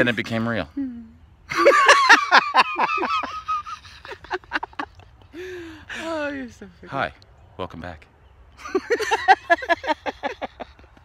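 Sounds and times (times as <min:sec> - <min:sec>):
person laughing hard: 0:01.5 - 0:04.9.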